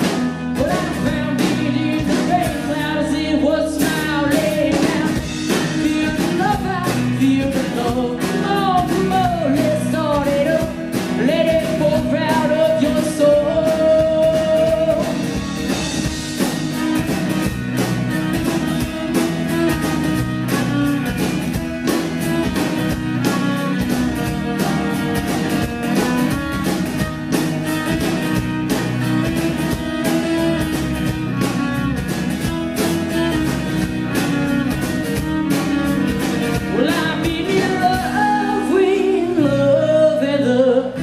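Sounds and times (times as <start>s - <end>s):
steady drum beat: 0.0s - 38.8s
acoustic guitar: 0.0s - 41.0s
electric bass: 0.0s - 41.0s
bowed viola: 15.0s - 38.7s.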